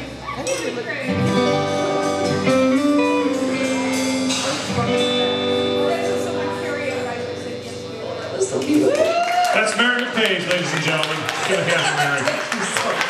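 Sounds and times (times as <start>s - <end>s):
blues band with ringing guitar: 0.0s - 12.0s.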